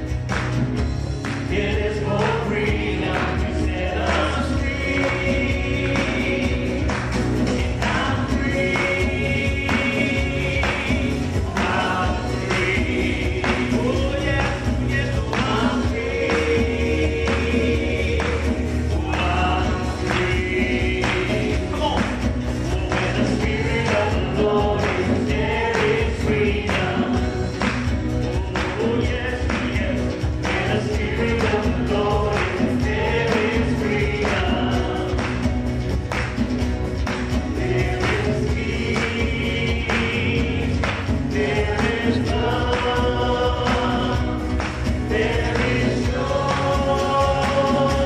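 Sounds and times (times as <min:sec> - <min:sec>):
acoustic guitar: 0:00.0 - 0:48.0
keyboard: 0:00.0 - 0:48.0
man and women singing: 0:01.4 - 0:35.7, 0:37.4 - 0:48.0.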